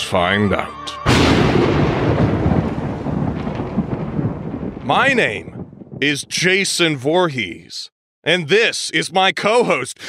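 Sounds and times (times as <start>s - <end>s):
deep rumble of a boom: 1.1s - 6.0s.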